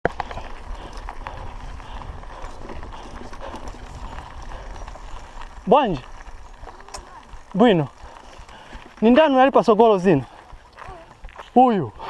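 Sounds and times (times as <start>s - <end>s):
bike rattles and clicks: 0.0s - 12.0s
bike tyres rumbling on dirt: 0.0s - 12.0s.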